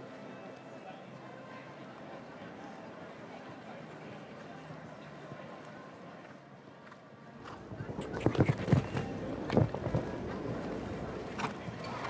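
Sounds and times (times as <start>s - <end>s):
horse hoofbeats on grass: 7.4s - 12.0s.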